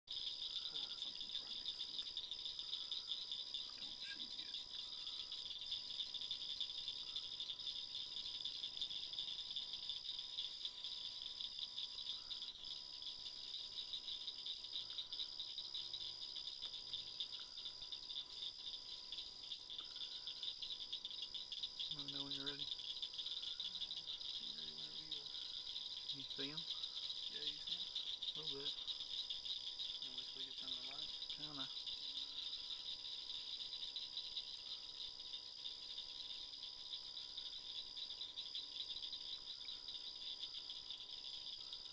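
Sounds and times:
crickets trilling: 0.1 - 41.9.

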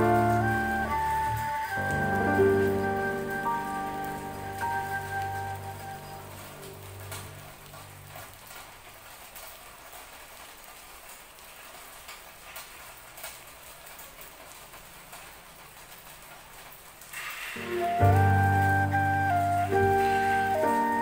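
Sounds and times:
soft music with held tones: 0.0 - 8.2, 17.6 - 21.0
steady rain falling: 0.0 - 21.0.

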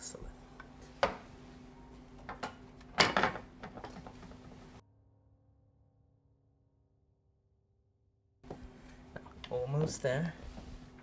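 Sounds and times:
low room hum: 8.4 - 11.0.

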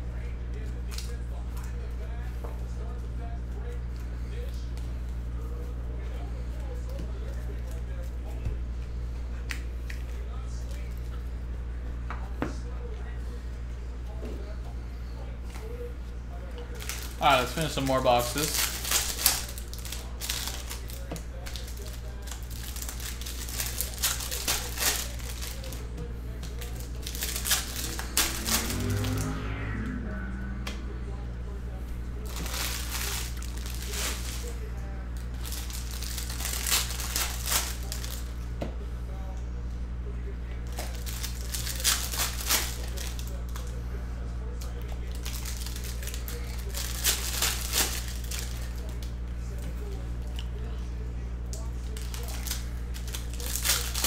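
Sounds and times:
steady low hum: 0.0 - 54.0
plastic wrappers crinkling and tearing: 0.6 - 1.8, 16.6 - 29.2, 32.2 - 38.4, 40.6 - 43.8, 44.5 - 50.7, 51.5 - 54.0.

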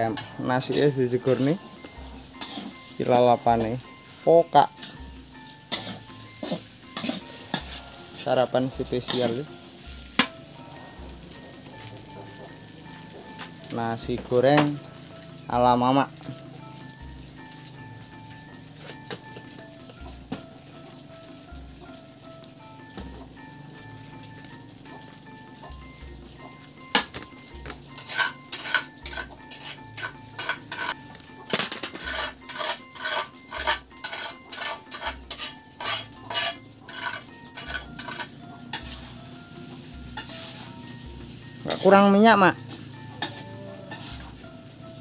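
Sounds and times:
metal spatula scraping a wok: 0.0 - 10.3, 27.8 - 39.4, 40.0 - 40.9, 42.7 - 44.4
soft background music: 0.0 - 45.0.

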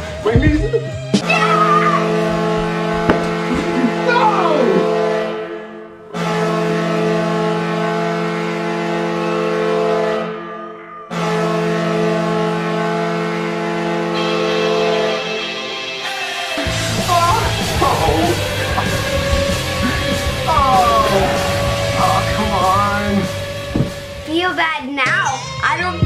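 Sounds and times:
excited shouting: 1.2 - 2.2, 3.8 - 5.0, 16.9 - 23.0
goal horn blasts: 17.4 - 24.3.

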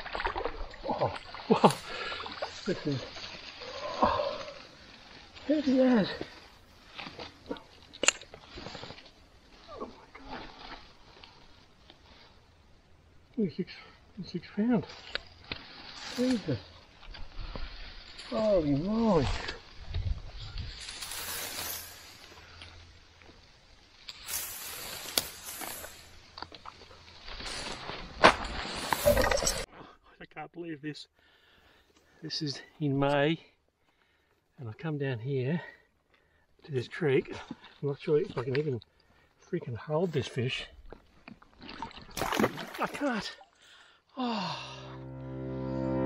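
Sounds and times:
splashes in shallow water: 0.0 - 4.6, 41.3 - 43.6
rustling in dry tall grass: 0.0 - 13.3, 13.9 - 29.7.

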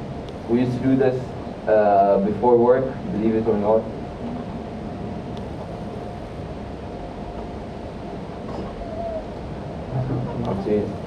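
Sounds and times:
low ventilation rumble: 0.0 - 11.0.

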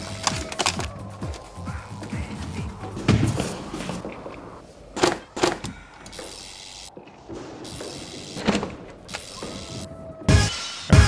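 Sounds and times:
music: 0.0 - 3.9, 10.2 - 11.0.

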